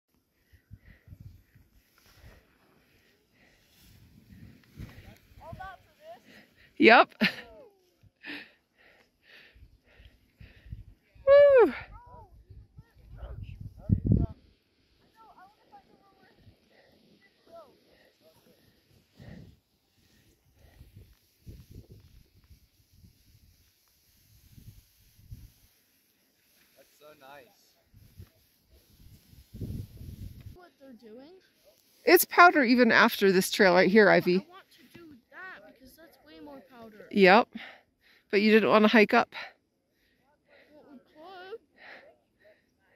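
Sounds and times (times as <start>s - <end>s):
wind buffeting microphone: 12.0s - 14.4s, 28.9s - 30.6s.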